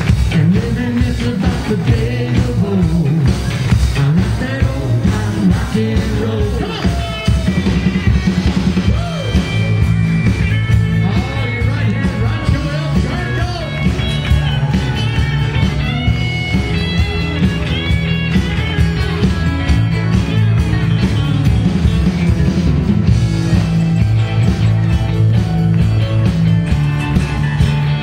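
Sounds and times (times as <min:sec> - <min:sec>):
bass and drums dance beat: 0:00.0 - 0:28.0
electric guitar lead: 0:00.0 - 0:28.0.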